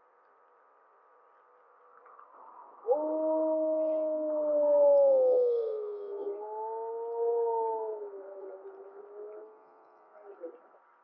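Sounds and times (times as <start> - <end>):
wolf howling: 2.8 - 9.8.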